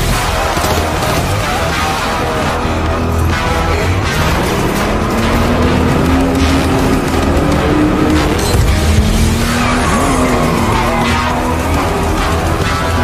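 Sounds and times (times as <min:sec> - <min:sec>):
car engine running hard: 0:00.0 - 0:13.0
loud film music: 0:00.0 - 0:13.0
tyres squealing: 0:01.7 - 0:13.0.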